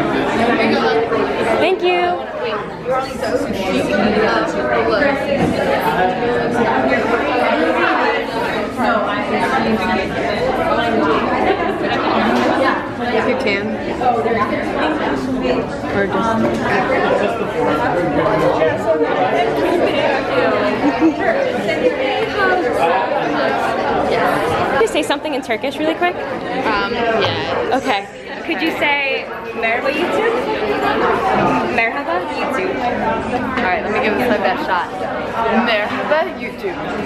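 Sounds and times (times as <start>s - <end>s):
group of people chattering: 0.0s - 37.0s.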